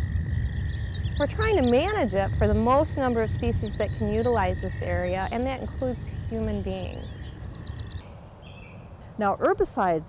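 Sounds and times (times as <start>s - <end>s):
small bird singing: 0.0s - 9.3s
low outdoor background noise: 0.0s - 10.0s.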